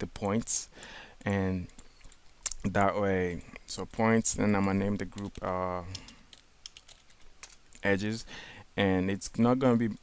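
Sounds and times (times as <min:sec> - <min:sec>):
keyboard typing: 0:04.9 - 0:07.9.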